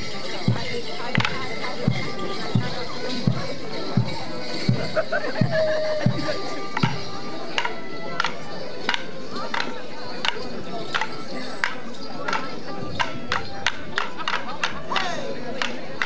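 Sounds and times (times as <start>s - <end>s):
wooden staves clacking: 7.6s - 15.8s.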